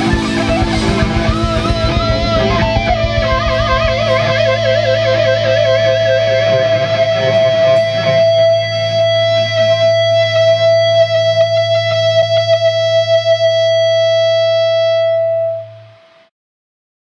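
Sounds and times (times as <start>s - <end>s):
drum hits: 0.0s - 5.2s
low bass drone: 0.0s - 7.7s
distorted electric guitar note: 0.0s - 16.3s.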